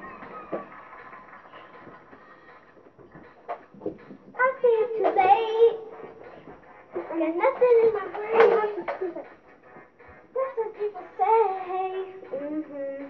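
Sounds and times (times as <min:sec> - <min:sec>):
child singing wavering notes: 0:07.0 - 0:09.3, 0:10.4 - 0:13.0.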